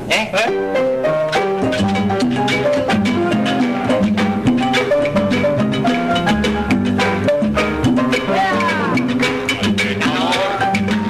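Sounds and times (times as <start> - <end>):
instrumental salsa dance music: 0.4 - 11.0.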